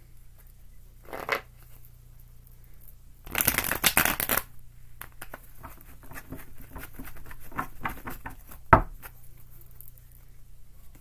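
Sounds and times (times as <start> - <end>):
cards shuffled by hand: 3.3 - 9.2.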